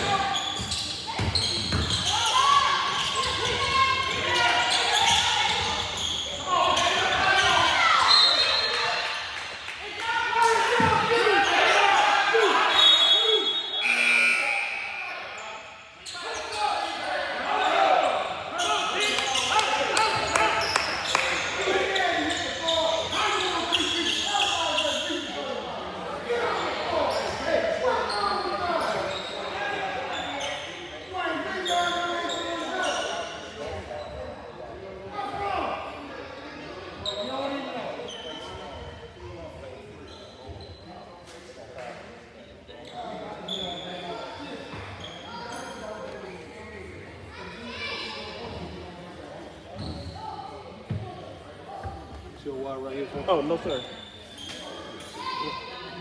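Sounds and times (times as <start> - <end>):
voices calling out echoing: 0.0 - 41.0.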